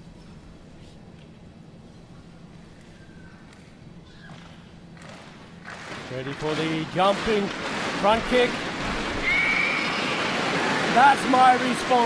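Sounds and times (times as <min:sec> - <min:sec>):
arena crowd noise: 0:05.7 - 0:12.0.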